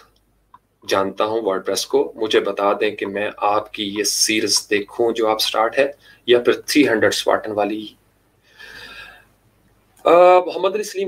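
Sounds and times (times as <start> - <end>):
man breathing in: 8.4 - 9.4.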